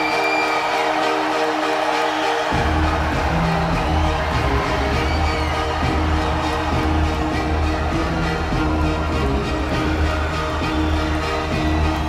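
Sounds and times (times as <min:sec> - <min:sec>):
bass and drums: 0:02.6 - 0:12.0.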